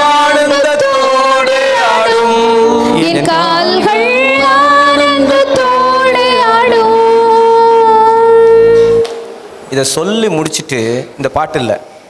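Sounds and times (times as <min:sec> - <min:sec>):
person singing long note: 0:00.0 - 0:09.3.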